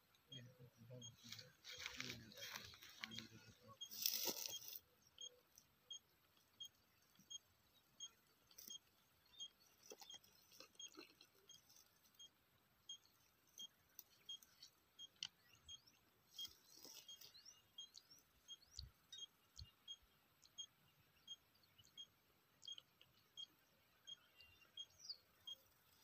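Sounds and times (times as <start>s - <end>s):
faint high ticks: 21.3s - 23.5s.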